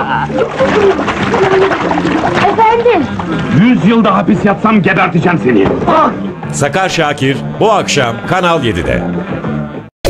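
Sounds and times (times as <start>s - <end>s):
water splashing over person: 0.3s - 3.9s
man's voice: 3.4s - 9.2s.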